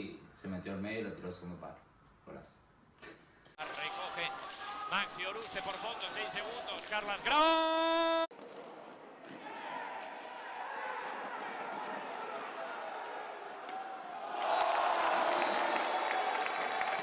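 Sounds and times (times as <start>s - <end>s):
crowd cheering loudly: 3.6s - 8.3s, 9.3s - 17.0s
arena crowd noise: 3.6s - 17.0s.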